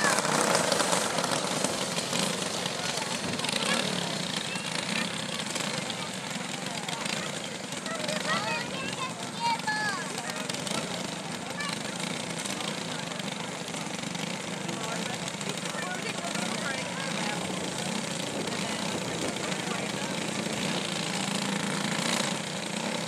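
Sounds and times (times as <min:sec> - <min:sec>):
distant go-kart engines: 0:00.0 - 0:23.0.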